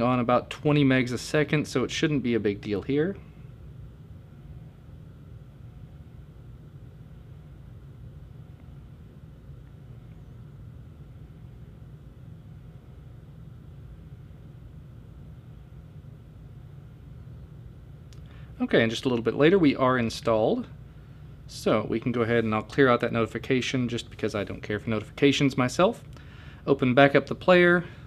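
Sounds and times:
low room hum: 0:00.0 - 0:28.0.

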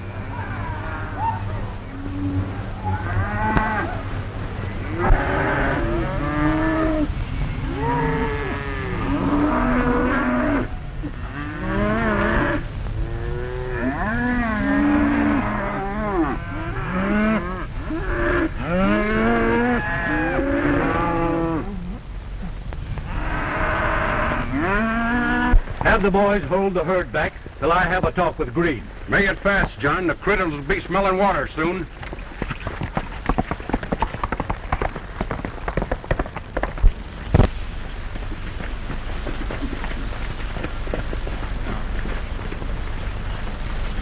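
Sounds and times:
steady low rumble: 0:00.0 - 0:44.0
cattle mooing: 0:02.0 - 0:04.0, 0:04.9 - 0:21.8.

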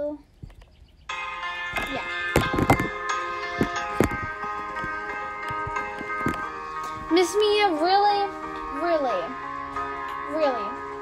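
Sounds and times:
pop ballad with sustained chords: 0:01.1 - 0:11.0.

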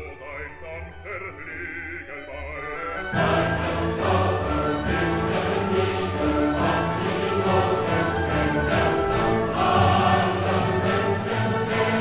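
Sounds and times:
choir singing with orchestra: 0:00.0 - 0:12.0.

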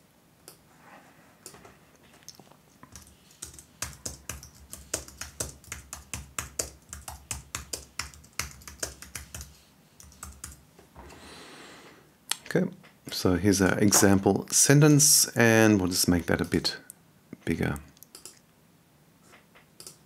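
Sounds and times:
typing on computer keyboard: 0:02.9 - 0:10.6, 0:19.8 - 0:20.0.

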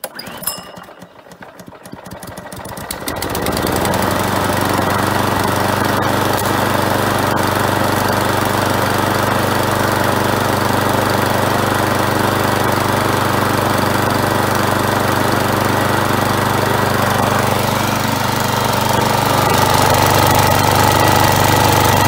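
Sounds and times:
lawn mower engine running: 0:00.0 - 0:22.0.

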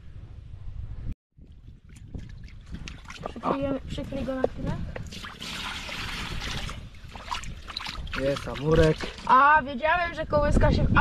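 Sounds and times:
water splashing and trickling: 0:01.4 - 0:09.8.

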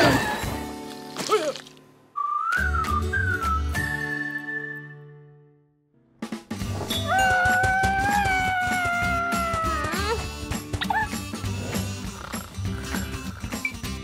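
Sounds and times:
cartoon background music: 0:06.2 - 0:14.0.

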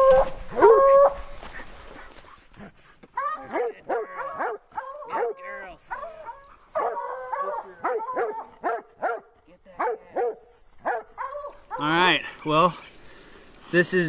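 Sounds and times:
hound barking and yelping: 0:00.0 - 0:01.6, 0:03.2 - 0:12.0.

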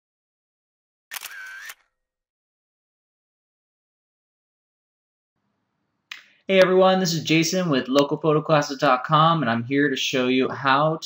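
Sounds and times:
camera shutter clicks: 0:01.1 - 0:01.9
short whir: 0:01.1 - 0:01.9.

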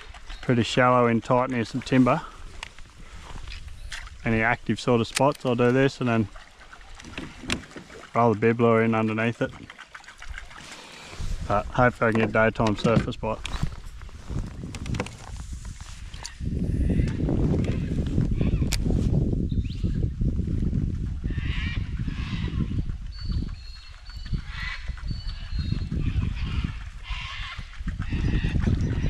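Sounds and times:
wind buffeting microphone: 0:00.0 - 0:08.1, 0:09.5 - 0:29.0
birds calling: 0:21.4 - 0:29.0.

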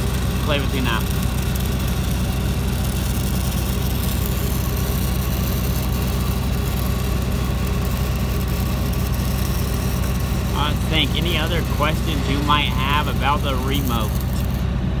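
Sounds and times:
welding arc crackling hiss: 0:00.0 - 0:14.8
welding machine engine humming: 0:00.0 - 0:15.0.

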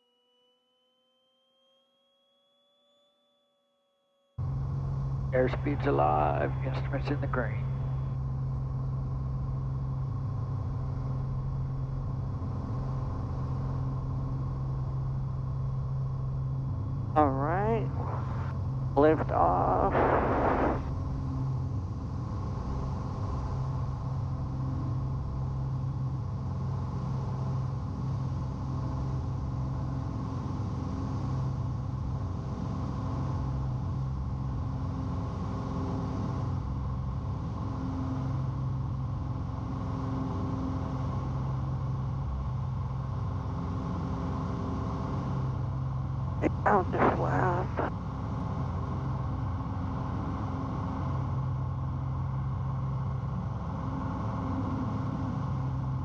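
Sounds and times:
aircraft piston engine drone: 0:04.4 - 0:56.0.

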